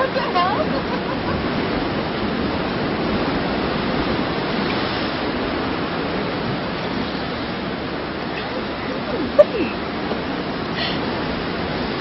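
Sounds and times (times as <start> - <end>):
ocean surf rushing: 0.0 - 12.0.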